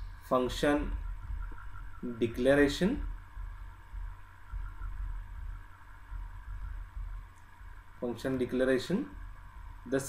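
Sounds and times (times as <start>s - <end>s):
faint steady tones: 0.0s - 10.0s
low background hum: 0.0s - 10.0s.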